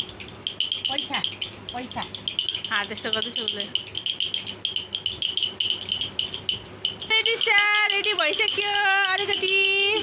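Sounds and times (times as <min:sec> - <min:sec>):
rattle shaken quickly: 0:00.0 - 0:10.0.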